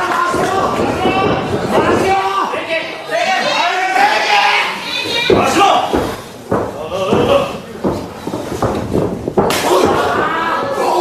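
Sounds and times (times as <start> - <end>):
wrestling body thuds: 5.3 - 10.5.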